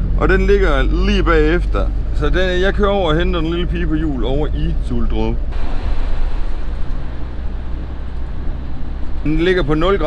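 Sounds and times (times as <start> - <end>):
engine and road rumble: 0.0 - 10.0
tyre noise on wet road: 5.5 - 10.0.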